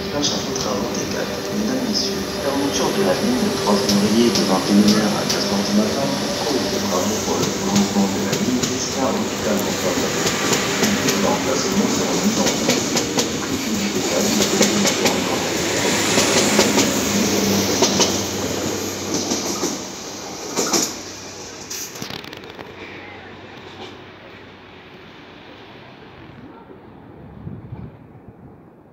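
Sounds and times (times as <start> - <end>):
train passing at speed: 0.0 - 28.7.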